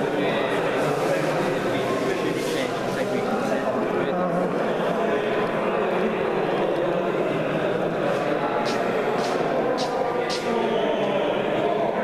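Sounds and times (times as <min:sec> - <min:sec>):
indistinct chatter of people: 0:00.0 - 0:12.0.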